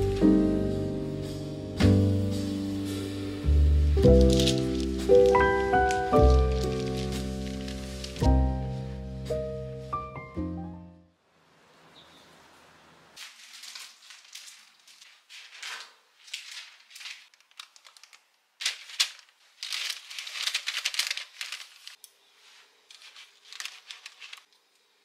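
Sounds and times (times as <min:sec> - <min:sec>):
parchment paper crinkling: 0:03.6 - 0:09.4, 0:13.2 - 0:24.7.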